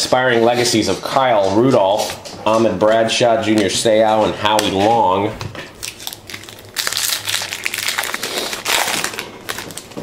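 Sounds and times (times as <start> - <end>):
wrapper crinkling: 5.8 - 10.0.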